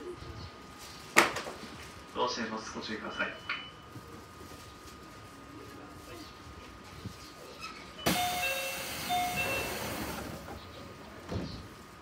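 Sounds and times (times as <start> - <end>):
two-note door chime: 8.0 - 10.2
train door air hiss: 8.0 - 10.8.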